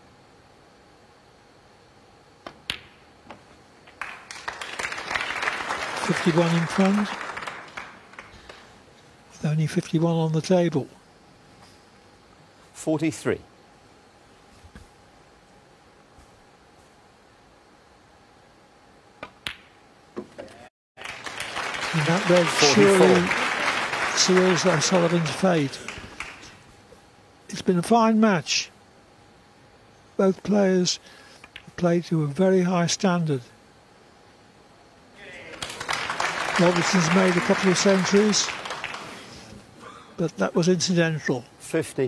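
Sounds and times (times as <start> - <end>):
audience applause: 4.0 - 8.7, 21.0 - 26.6, 35.2 - 39.4.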